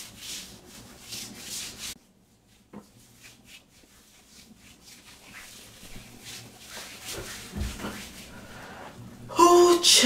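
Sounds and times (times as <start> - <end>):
hands rubbing cream on skin: 0.0 - 8.4.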